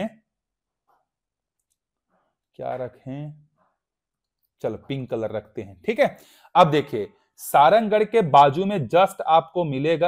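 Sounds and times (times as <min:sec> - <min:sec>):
man's voice: 0:04.6 - 0:10.0.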